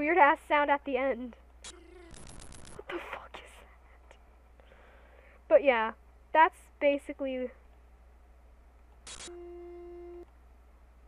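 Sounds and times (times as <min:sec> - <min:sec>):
steady low beep: 0:09.1 - 0:10.3.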